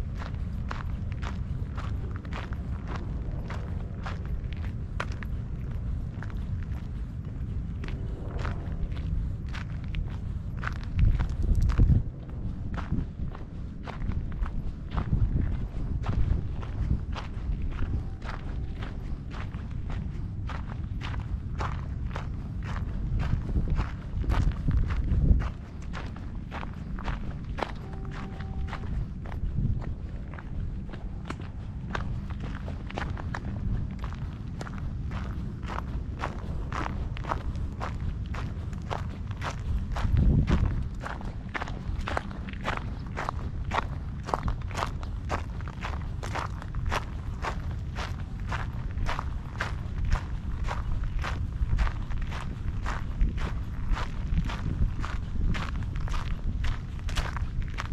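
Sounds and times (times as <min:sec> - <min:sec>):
footsteps on gravel: 0:00.0 - 0:57.9
wind rumble on microphone: 0:00.0 - 0:57.9.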